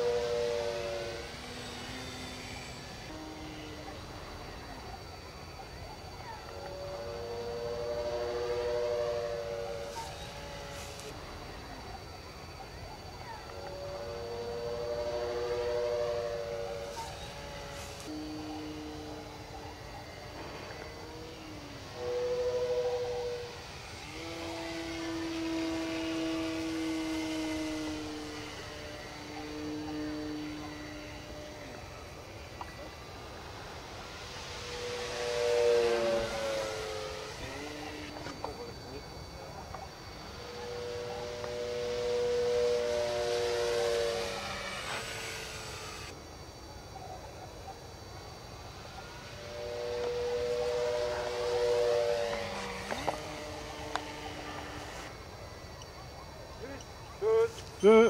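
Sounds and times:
model plane motor howling whistle: 0:00.0 - 0:46.2, 0:48.5 - 0:55.2.

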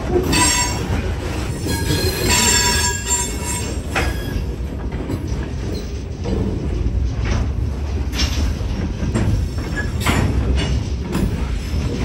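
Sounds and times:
freight cars rumbling on rails: 0:00.0 - 0:12.0.

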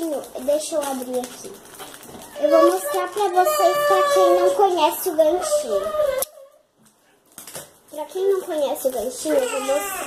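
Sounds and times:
plastic clicks and rustles: 0:00.0 - 0:03.5, 0:06.2 - 0:10.0
scissors snipping plastic bag: 0:00.0 - 0:04.8.

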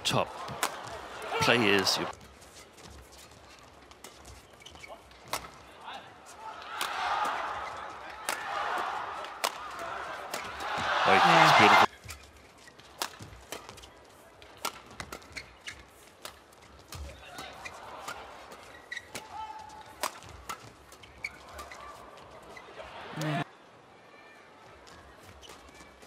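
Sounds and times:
arena crowd noise: 0:00.0 - 0:02.1, 0:04.9 - 0:12.0, 0:16.9 - 0:26.0
shoe squeaks: 0:01.4 - 0:05.3, 0:15.2 - 0:16.1, 0:18.6 - 0:19.7, 0:20.9 - 0:22.8
racket striking shuttlecock: 0:09.4 - 0:09.6, 0:13.0 - 0:13.8.

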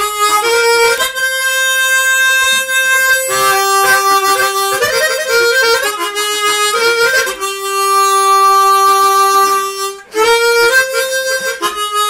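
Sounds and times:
harmonica holding long note: 0:00.0 - 0:12.0.

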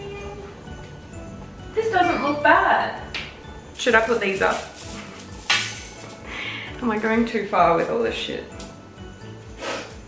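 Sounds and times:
bead garland clinking and rattling: 0:03.8 - 0:07.3.

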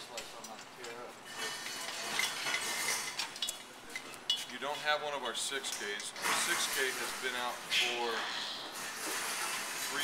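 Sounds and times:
metal parts clinking and rattling: 0:00.4 - 0:04.6.

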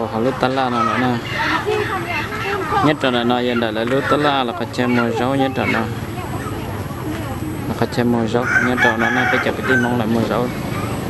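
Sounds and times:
people talking: 0:00.0 - 0:10.9
chickens clucking: 0:00.0 - 0:11.0
rooster crowing: 0:08.2 - 0:11.0.

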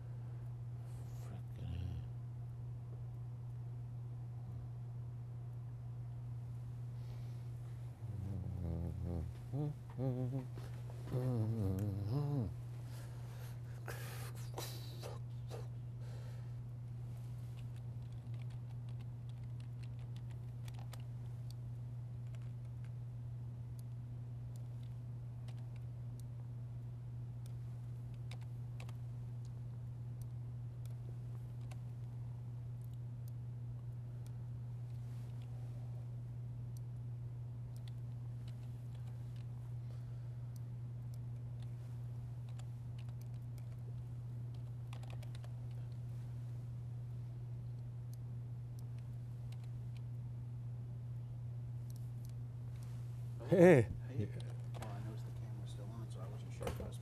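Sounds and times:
steady low hum: 0:00.0 - 0:57.0
computer keyboard typing: 0:17.6 - 0:21.6, 0:22.2 - 0:23.0, 0:23.8 - 0:26.3, 0:27.4 - 0:29.6, 0:42.4 - 0:46.0, 0:48.8 - 0:50.0.

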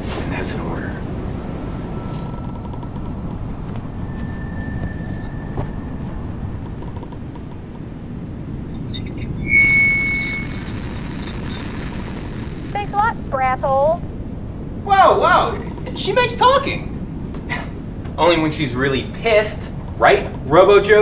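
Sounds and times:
low rumbling hum: 0:00.0 - 0:20.9
high-pitched electronic tone: 0:01.6 - 0:07.0, 0:08.8 - 0:13.9.

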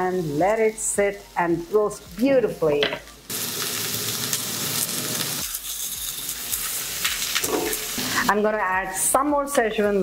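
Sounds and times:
potatoes sizzling in hot oil: 0:00.0 - 0:10.0.

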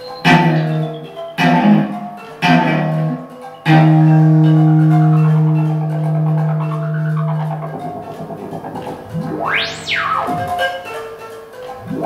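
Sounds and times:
amplified plucked string notes: 0:00.0 - 0:10.9.

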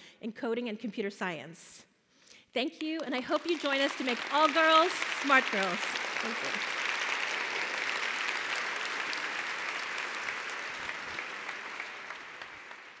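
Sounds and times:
audience applauding: 0:03.0 - 0:13.0.

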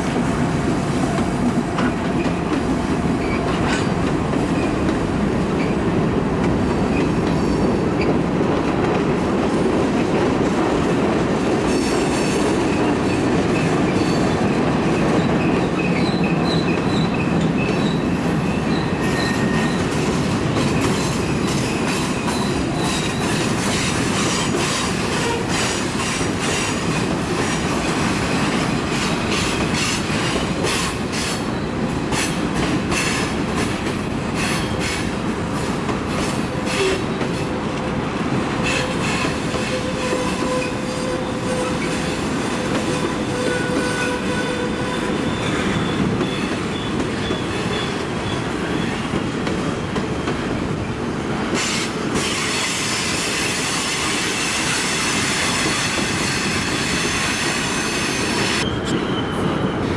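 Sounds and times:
rail joint clicks: 0:00.0 - 0:44.3, 0:45.2 - 0:59.9
train wheels rumbling on rail: 0:00.0 - 0:59.9.

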